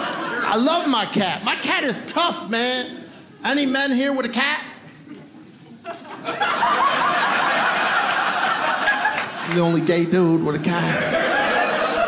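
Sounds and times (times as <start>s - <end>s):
audience laughing: 0.0s - 1.4s, 4.8s - 12.0s.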